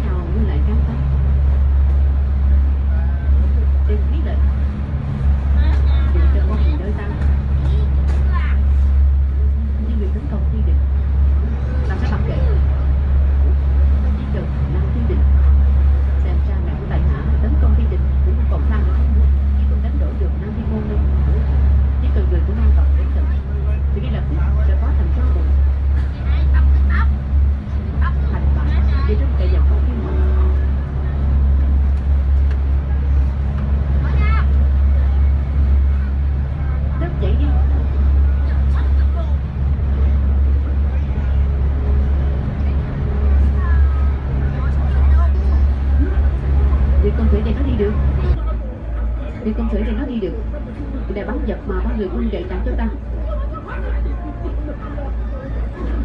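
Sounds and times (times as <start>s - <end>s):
ferry engines droning: 0.0s - 56.0s.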